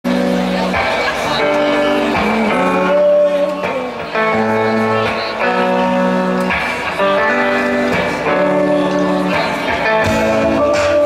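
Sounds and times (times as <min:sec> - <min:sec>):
guitars playing chords: 0:00.0 - 0:11.0.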